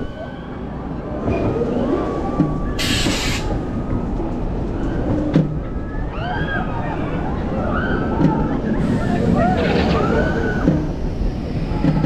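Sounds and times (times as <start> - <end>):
wheels rumbling on track: 0.0 - 12.0.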